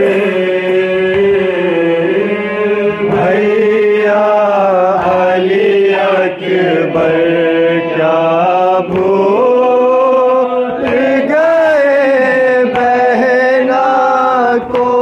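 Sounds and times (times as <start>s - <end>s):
men chanting a lament: 0.0s - 15.0s.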